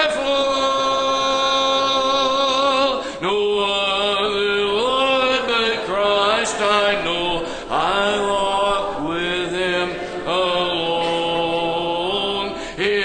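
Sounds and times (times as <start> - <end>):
congregation singing a hymn: 0.0 - 13.0.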